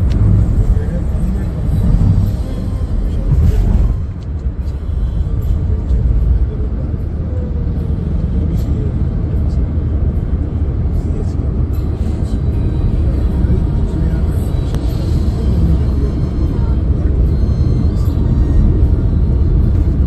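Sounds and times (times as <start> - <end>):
road and engine rumble in car: 0.0 - 20.0.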